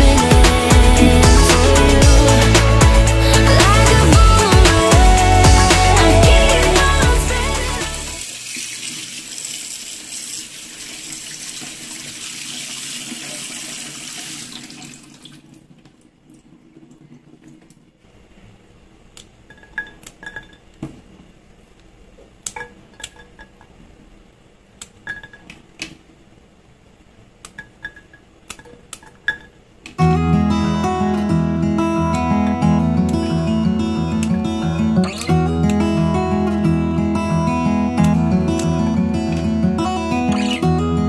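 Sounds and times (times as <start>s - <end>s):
tap water running into sink: 8.2s - 16.0s.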